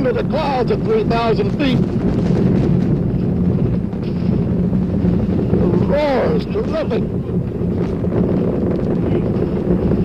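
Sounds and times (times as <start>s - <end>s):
rocket engines roaring: 0.0s - 10.0s.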